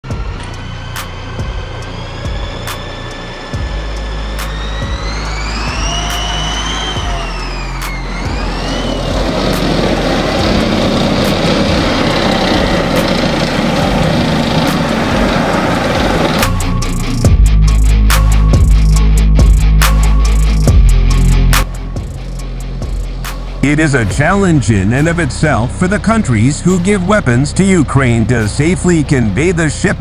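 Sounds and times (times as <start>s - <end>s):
heavy vehicle engine revving: 0.0s - 30.0s
music: 0.0s - 30.0s
rush of noise: 0.0s - 30.0s.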